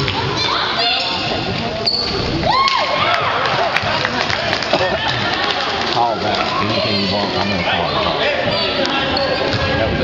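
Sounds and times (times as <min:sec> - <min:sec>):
spectators' voices echoing: 0:00.0 - 0:10.0.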